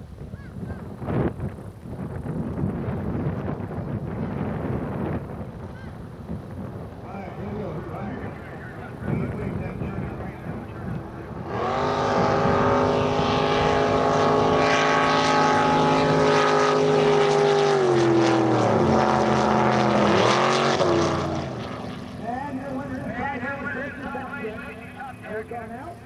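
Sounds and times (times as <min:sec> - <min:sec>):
racing boat engines revving: 0:04.9 - 0:26.0
voices: 0:07.0 - 0:11.6, 0:22.2 - 0:26.0.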